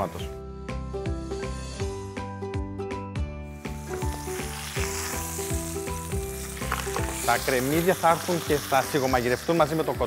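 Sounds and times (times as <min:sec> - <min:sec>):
background music with bass: 0:00.0 - 0:10.0
food sizzling in a pan: 0:03.5 - 0:10.0.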